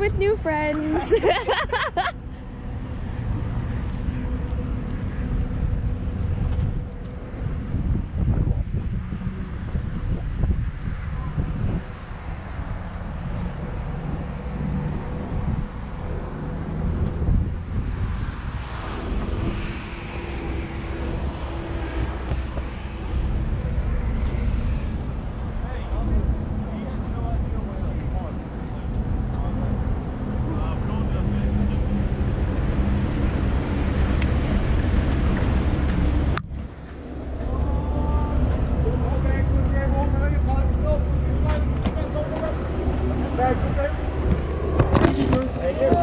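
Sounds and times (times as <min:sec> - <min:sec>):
road traffic passing: 0:00.0 - 0:46.0
wind buffeting microphone: 0:06.4 - 0:27.6.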